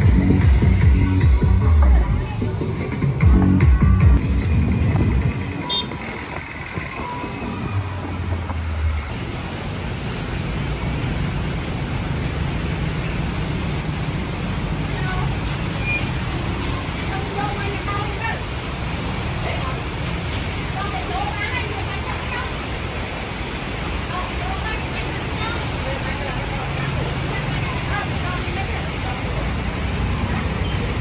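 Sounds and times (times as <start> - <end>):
music: 0.0 - 7.8
traffic passing: 0.0 - 31.0
heavy rain on wet road: 4.5 - 31.0
voices: 14.5 - 31.0.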